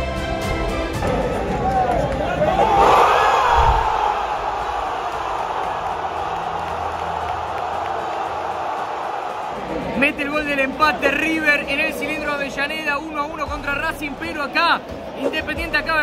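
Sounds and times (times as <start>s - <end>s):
stadium crowd cheering: 1.0s - 15.6s.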